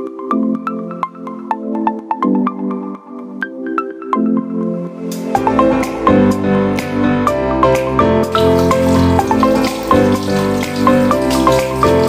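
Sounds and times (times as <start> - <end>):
melodic background music: 0.0 - 12.0
tap water running into sink: 8.2 - 12.0.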